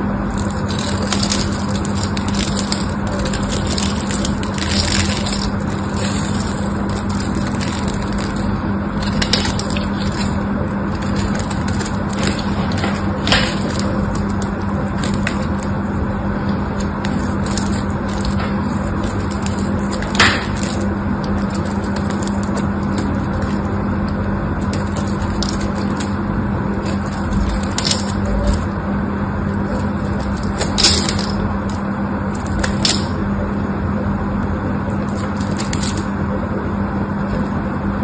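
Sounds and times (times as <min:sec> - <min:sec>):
knife shaving soap: 0:00.0 - 0:33.2
low hum and hiss: 0:00.0 - 0:38.0.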